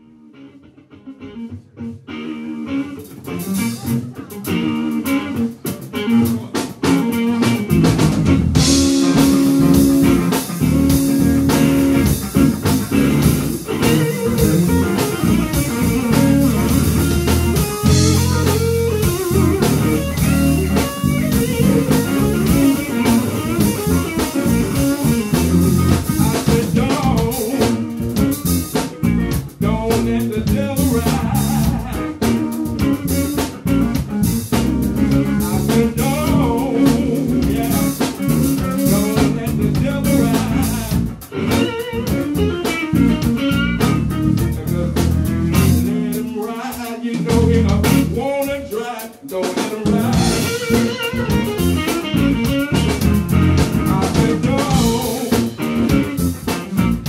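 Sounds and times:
electric guitars: 0.0 - 57.0
electric bass: 1.2 - 48.8, 49.8 - 57.0
drum kit: 3.0 - 57.0.

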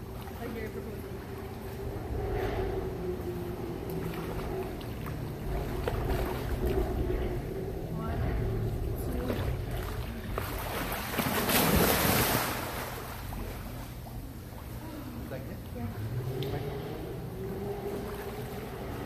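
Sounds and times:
pool water churning and lapping: 0.0 - 19.0
steady low hum: 0.0 - 19.0
loud splash of swimmer: 10.9 - 13.2.

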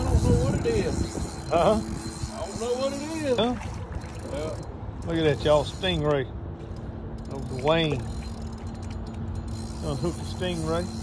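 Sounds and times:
fishing reel clicking: 0.0 - 6.1, 7.2 - 11.0.

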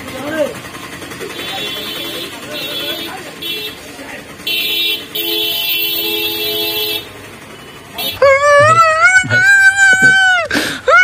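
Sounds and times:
vehicle horn long blast: 1.3 - 3.8, 4.4 - 8.4.

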